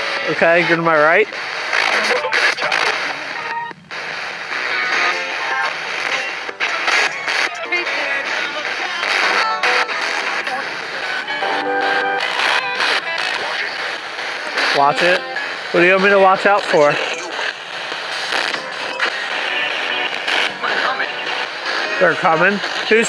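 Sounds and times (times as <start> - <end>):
choppy radio static: 0.0 - 23.0
radio voices: 0.0 - 23.0
snatches of radio music: 0.0 - 23.0.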